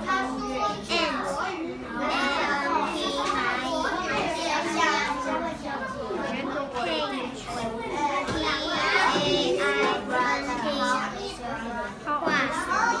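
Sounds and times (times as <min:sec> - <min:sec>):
children talking: 0:00.0 - 0:13.0.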